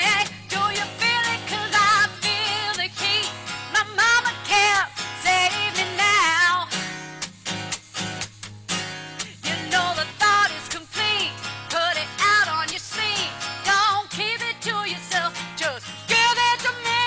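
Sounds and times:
woman singing with vibrato: 0.0s - 6.8s, 9.4s - 17.0s
acoustic guitar strumming: 0.0s - 17.0s.

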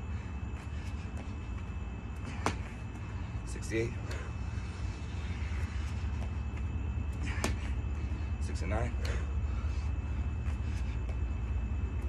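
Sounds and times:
person exercising on a mat: 0.0s - 12.0s
sharp slap: 2.3s - 2.8s.

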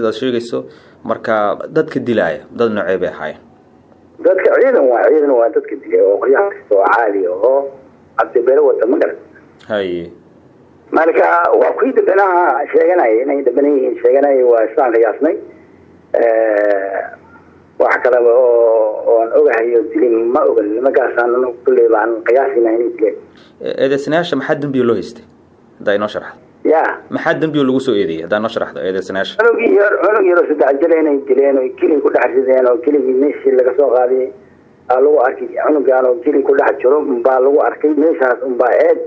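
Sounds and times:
person talking: 16.1s - 39.0s.

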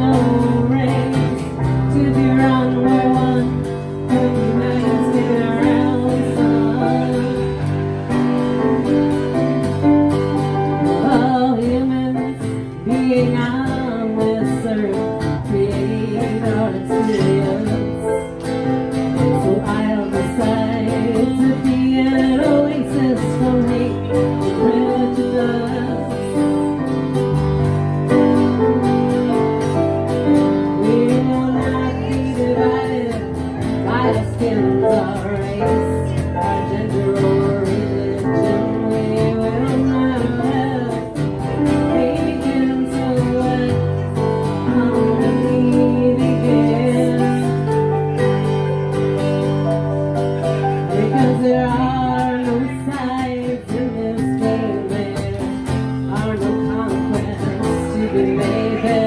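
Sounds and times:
woman singing: 0.0s - 27.3s, 28.0s - 59.0s
keyboard playing piano: 0.0s - 59.0s
strummed acoustic guitar: 0.0s - 59.0s.

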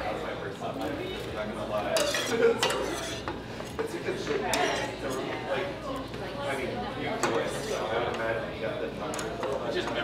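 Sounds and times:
cutlery scraping ceramic plate: 2.0s - 3.4s, 4.5s - 4.9s.

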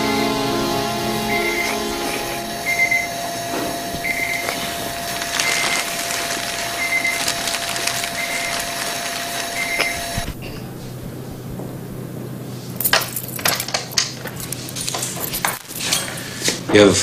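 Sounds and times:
high electronic beep: 1.2s - 3.2s, 4.0s - 4.5s.

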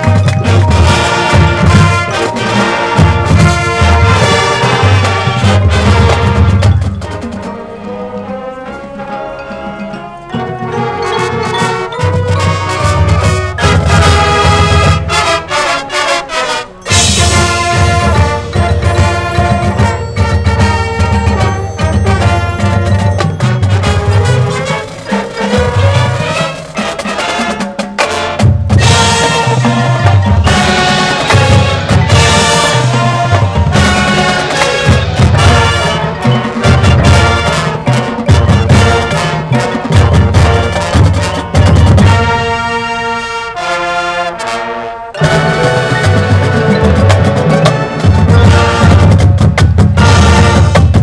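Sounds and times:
marching band playing: 0.0s - 51.0s.

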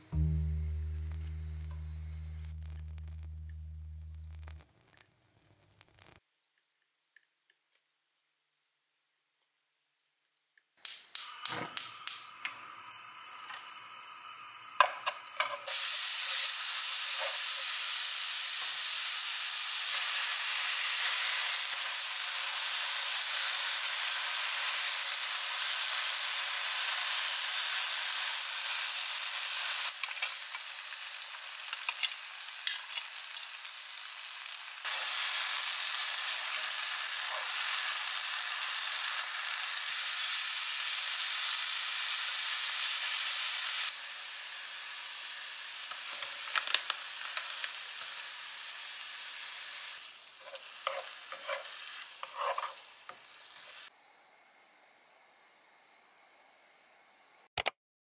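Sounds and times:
vegetables sizzling in a frying pan: 11.2s - 53.9s
chopsticks scraping a pan: 36.3s - 37.8s, 50.4s - 53.8s.

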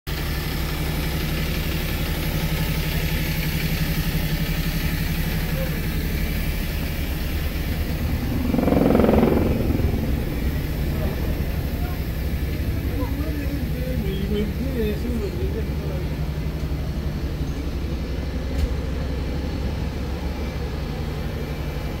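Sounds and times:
buses idling: 0.1s - 22.0s.

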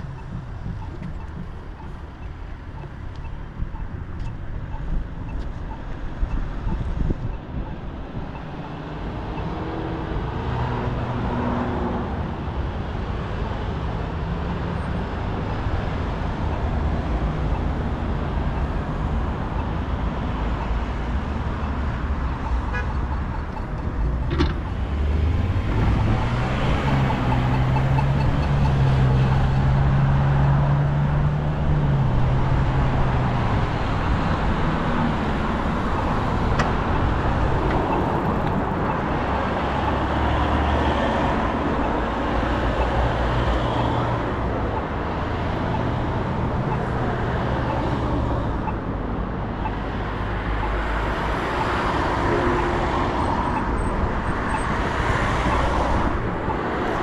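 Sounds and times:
cars passing: 0.0s - 57.0s.

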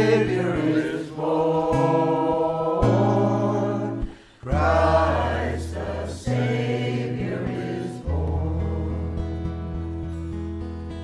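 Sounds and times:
mixed choir singing: 0.0s - 9.6s
strummed acoustic guitar: 0.0s - 11.0s.

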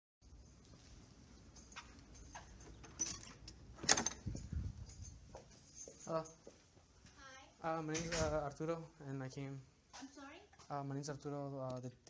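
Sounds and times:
faint footsteps: 0.3s - 2.8s, 3.6s - 8.5s
metallic door clack: 2.5s - 4.4s.

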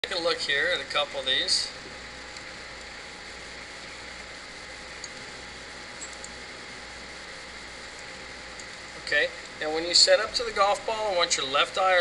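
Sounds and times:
faint clicks: 5.0s - 5.2s.

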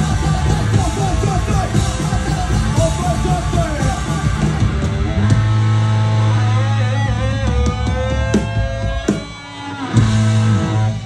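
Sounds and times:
drums: 0.0s - 11.0s
electric guitars ringing: 0.0s - 11.0s
guitar line bending in pitch: 0.0s - 11.0s.

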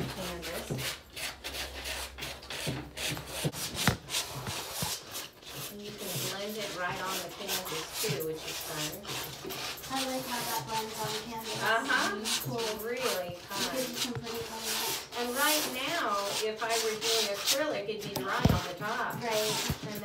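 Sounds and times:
palette knives scraping canvas: 0.0s - 20.0s.

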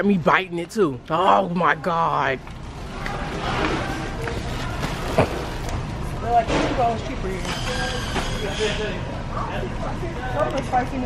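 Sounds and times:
steady store background noise: 0.0s - 11.0s.

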